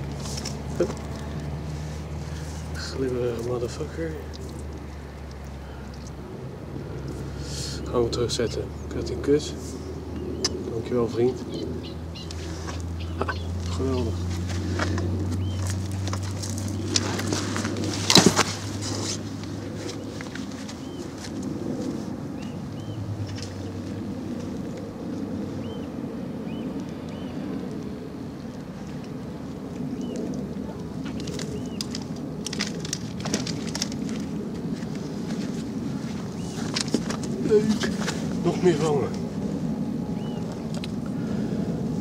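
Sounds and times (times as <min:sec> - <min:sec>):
steady low rumble: 0:00.0 - 0:42.0
bird chirps: 0:09.8 - 0:14.2, 0:15.4 - 0:15.8, 0:40.2 - 0:40.6.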